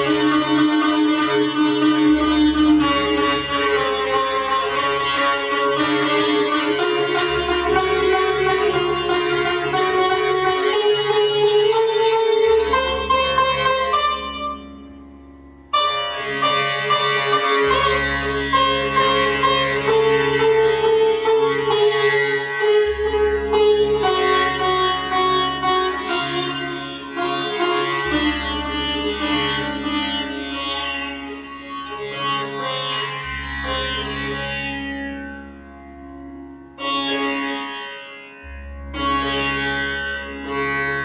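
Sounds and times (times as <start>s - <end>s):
sitar melody: 0.0s - 41.0s.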